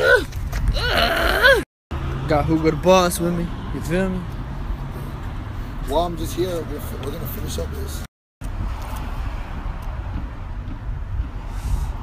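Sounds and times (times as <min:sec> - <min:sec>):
street background rumble: 0:00.0 - 0:12.0.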